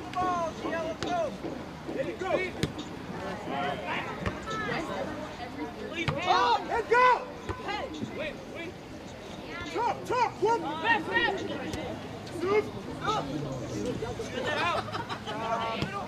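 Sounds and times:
players shouting: 5.8 - 8.6.

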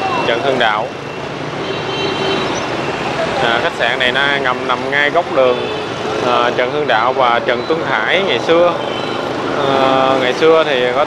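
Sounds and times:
motorbikes passing: 0.0 - 11.0
traffic engine and tyre noise: 0.0 - 11.0.

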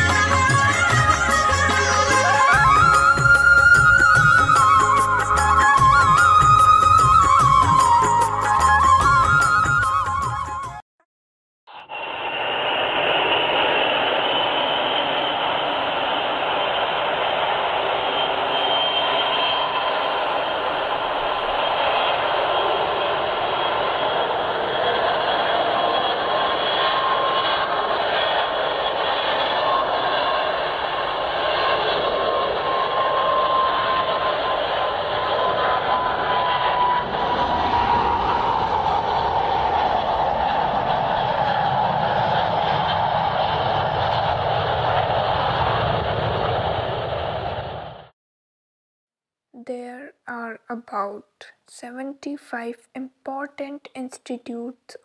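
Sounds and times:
jet engine roar with whine: 0.0 - 10.2, 11.7 - 48.1
deep rumble: 29.8 - 48.1.

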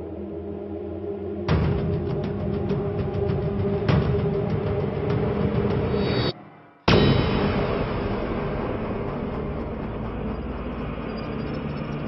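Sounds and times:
steady rumbling noise: 7.0 - 12.0.

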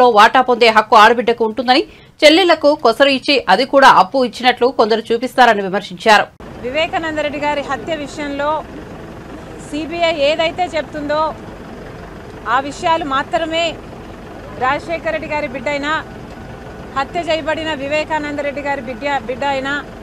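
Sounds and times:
woman speaking: 0.0 - 8.7, 9.6 - 11.4, 12.5 - 13.8, 14.6 - 16.0, 16.9 - 19.9
low background hum: 0.0 - 20.0.

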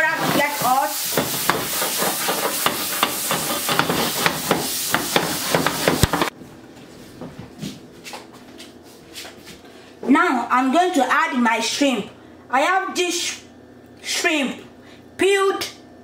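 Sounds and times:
butter sizzling in frying pan: 0.2 - 6.2.

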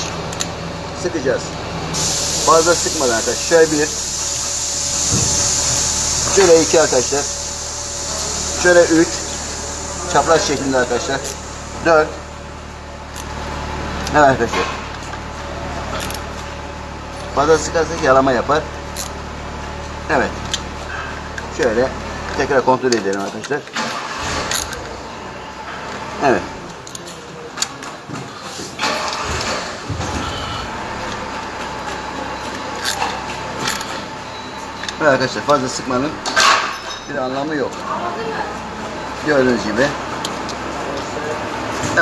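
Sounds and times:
steady background noise: 0.0 - 42.0
steady low hum: 0.0 - 42.0
metal tools clicking on bolts: 15.9 - 16.4.

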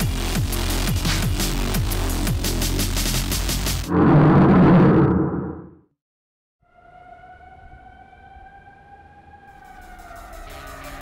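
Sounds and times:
low rumble: 3.9 - 5.7
siren-like tone sinking in pitch: 6.6 - 11.0.

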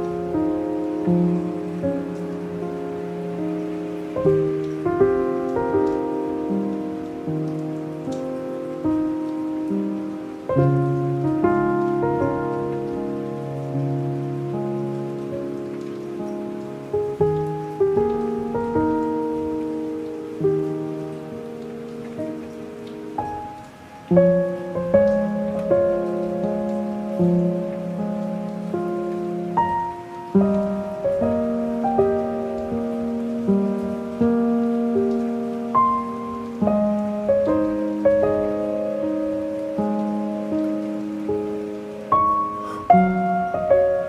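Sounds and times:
light rain pattering: 0.0 - 44.0
slow soft piano music: 0.0 - 44.0.

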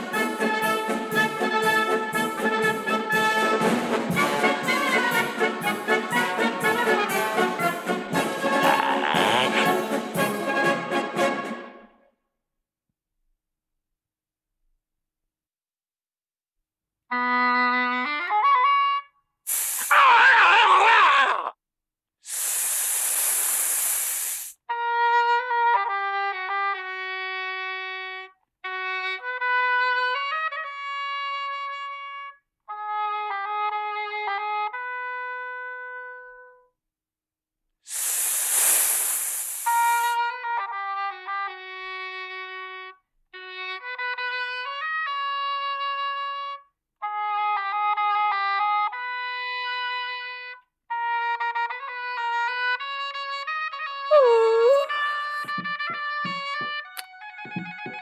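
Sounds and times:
horn-like pipe playing tune: 0.0 - 11.4, 50.0 - 58.0
cartoon snake hissing: 8.6 - 9.8, 19.5 - 21.5, 22.3 - 24.6, 37.9 - 40.2, 54.2 - 55.3.

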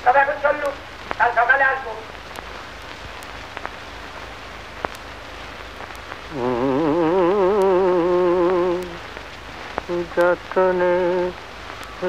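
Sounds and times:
steady hiss: 0.0 - 12.0
man singing a long note: 6.3 - 9.0, 9.9 - 11.4.

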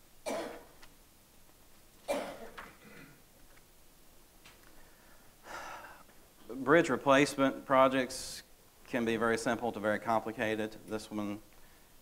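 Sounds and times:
harsh cough: 0.2 - 0.7, 2.1 - 3.2.

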